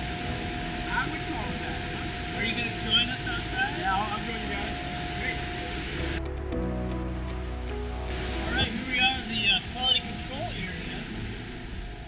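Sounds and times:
constant high tone: 0.0s - 6.2s, 8.1s - 12.0s
machinery hum: 0.0s - 6.6s, 8.1s - 12.0s.

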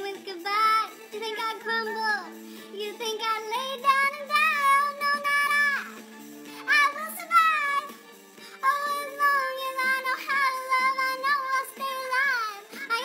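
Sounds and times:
high voice singing disco tune: 0.0s - 13.0s.

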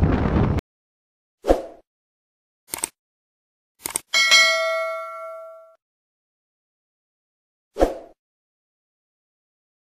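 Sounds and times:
bell ding: 4.2s - 5.8s.

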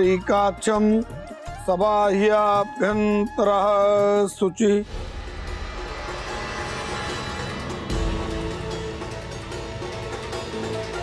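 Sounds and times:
sudden low hit: 4.8s - 10.0s.

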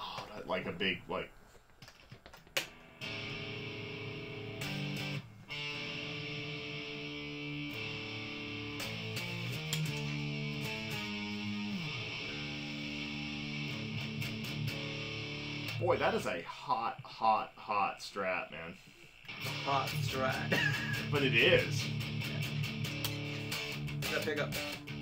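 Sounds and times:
electric guitar chords: 2.7s - 16.1s, 19.3s - 25.0s.

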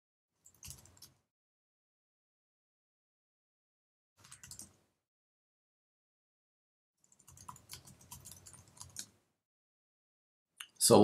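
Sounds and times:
faint keyboard typing: 0.4s - 1.2s, 4.2s - 4.9s, 7.0s - 9.2s.

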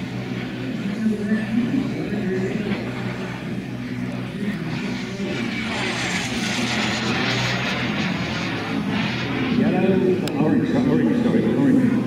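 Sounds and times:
model jet turbine flying past: 0.0s - 12.0s.

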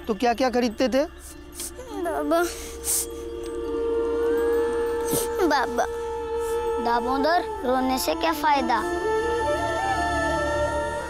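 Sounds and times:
sustained score notes: 1.6s - 11.0s.

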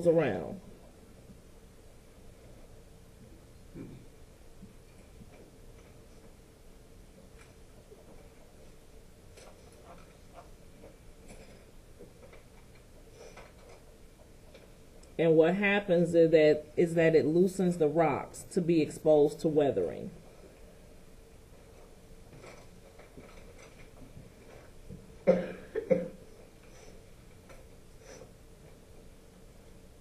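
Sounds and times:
person coughing: 25.3s - 26.2s.

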